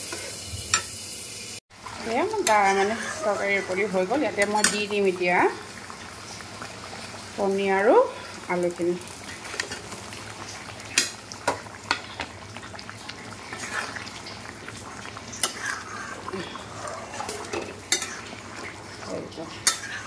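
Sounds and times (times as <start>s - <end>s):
ladle stirring thick gravy: 2.4s - 5.0s, 9.2s - 20.0s.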